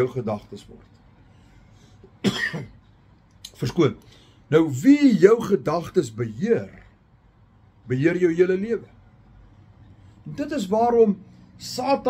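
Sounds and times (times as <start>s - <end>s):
man coughing: 2.2s - 2.8s.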